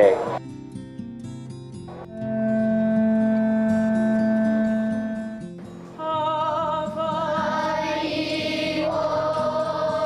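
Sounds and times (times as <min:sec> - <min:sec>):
conch shell trumpet long note: 0:02.1 - 0:05.4.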